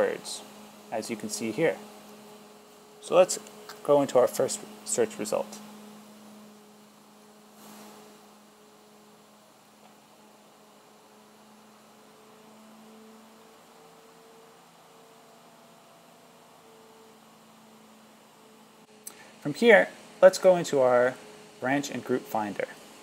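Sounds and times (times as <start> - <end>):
faint electrical hum: 0.0 - 23.0
thin hiss: 7.4 - 9.0.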